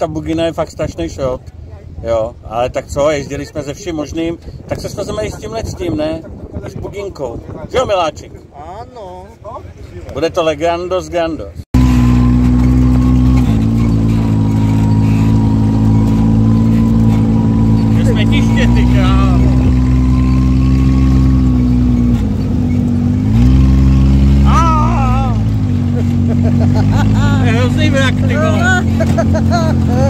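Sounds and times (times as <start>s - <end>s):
dune buggy engine: 11.8s - 30.0s
people shouting: 24.4s - 25.5s.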